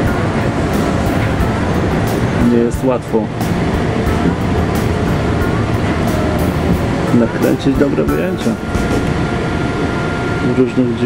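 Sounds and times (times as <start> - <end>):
faint whine: 0.0 - 11.0
railway car rumble and hiss: 0.0 - 11.0.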